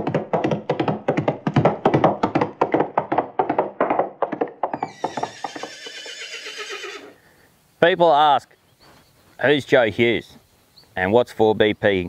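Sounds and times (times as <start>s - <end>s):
horse hoofbeats galloping: 0.0s - 6.8s
horse whinny: 4.8s - 7.2s.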